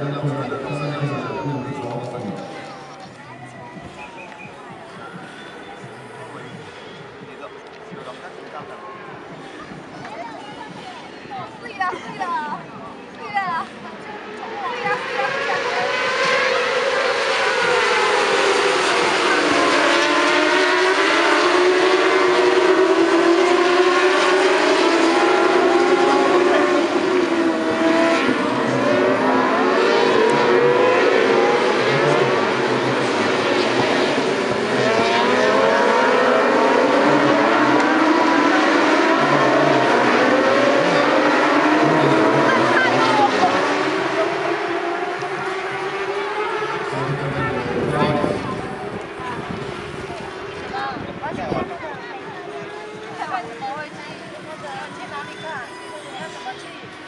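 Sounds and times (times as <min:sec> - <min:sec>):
racing motorcycles revving: 0:00.0 - 0:57.0.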